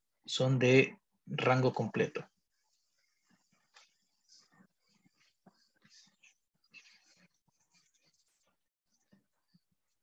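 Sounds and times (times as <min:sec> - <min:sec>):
stylus scratching on a tablet: 0:00.0 - 0:10.0.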